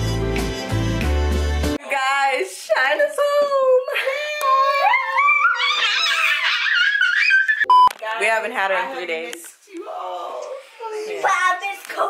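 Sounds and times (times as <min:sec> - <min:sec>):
girl squealing: 0:04.6 - 0:07.7.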